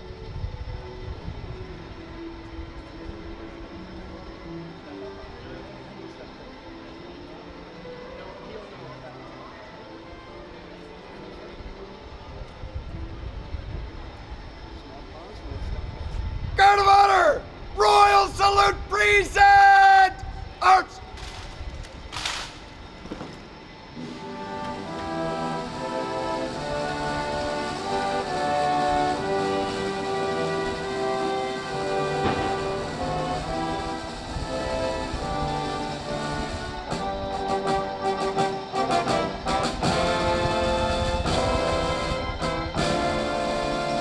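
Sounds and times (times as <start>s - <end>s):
shouted parade command: 16.6s - 21.1s
brass band playing slow salute: 24.0s - 44.0s.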